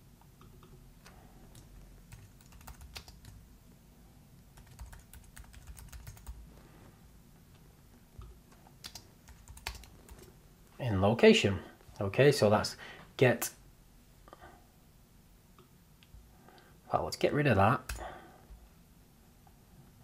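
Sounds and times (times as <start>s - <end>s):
typing on computer keyboard: 0.4s - 3.4s, 4.6s - 6.4s, 8.5s - 10.3s.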